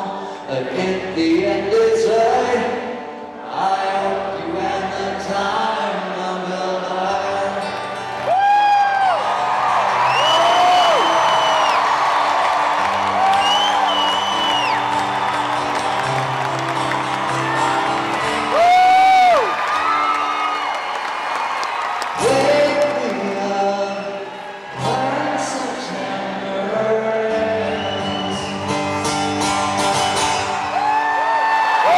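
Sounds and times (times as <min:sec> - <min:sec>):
amplified acoustic guitar chords: 0:00.0 - 0:10.1, 0:11.1 - 0:18.6, 0:22.2 - 0:30.8
crowd cheering: 0:07.7 - 0:31.9.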